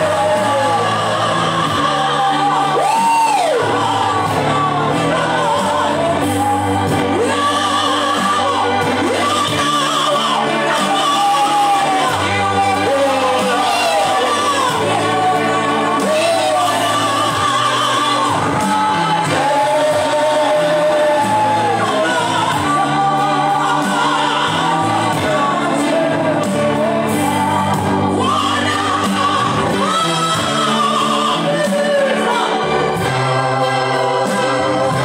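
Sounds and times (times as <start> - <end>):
congregation singing a gospel song: 0.0 - 35.0.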